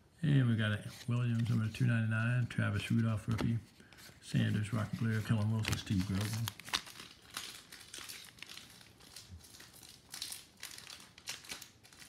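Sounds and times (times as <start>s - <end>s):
foil wrapper crinkling: 2.8s - 12.0s.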